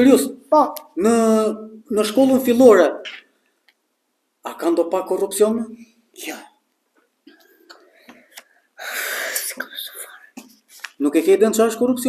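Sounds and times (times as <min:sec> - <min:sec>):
person whispering: 0:08.8 - 0:11.0.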